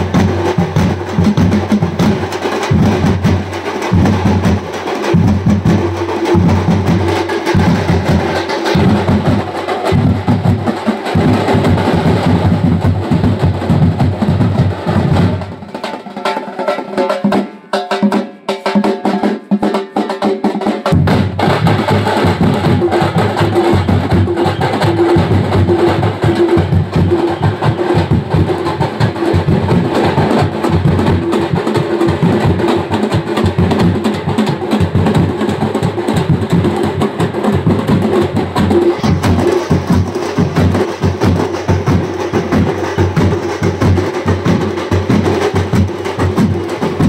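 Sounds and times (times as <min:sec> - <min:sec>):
drummers beating large drums: 0:00.0 - 0:47.0.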